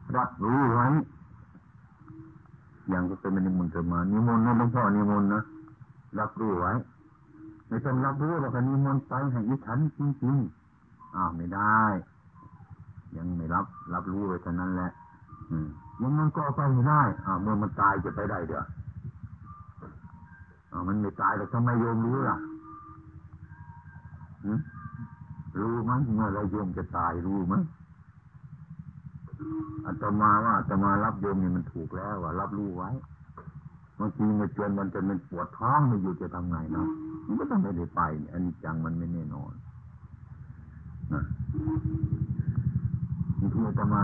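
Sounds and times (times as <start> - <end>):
faint steady high tones: 0.0 - 44.0
low pulsing background buzz: 0.0 - 44.0
small engine running: 0.0 - 44.0.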